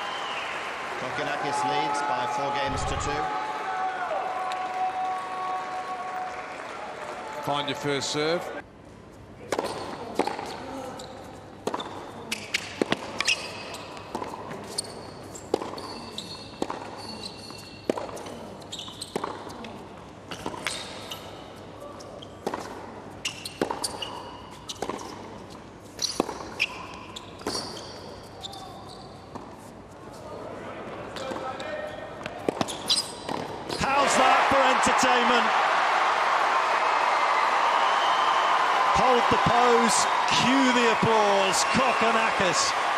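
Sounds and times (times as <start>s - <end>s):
crowd applause and cheering: 0.0s - 7.9s, 33.8s - 42.9s
sneakers squeaking: 9.6s - 19.7s, 20.3s - 22.6s, 23.2s - 25.2s, 25.8s - 29.6s, 32.2s - 34.0s
tennis ball bouncing: 23.5s - 25.2s.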